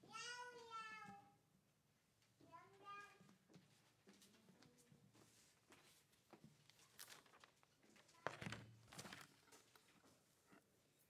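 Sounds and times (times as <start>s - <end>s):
faint high-pitched vocal cry: 0.0s - 1.4s.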